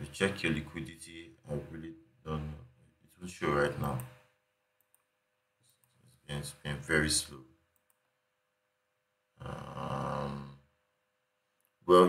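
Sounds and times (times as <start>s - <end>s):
computer mouse clicks: 3.8s - 4.2s, 4.8s - 5.1s, 7.7s - 8.1s.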